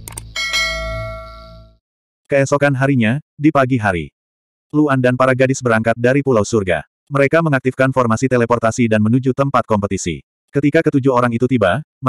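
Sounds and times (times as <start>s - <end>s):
quick clicks: 0.0s - 0.4s
notification bell ding: 0.4s - 1.8s.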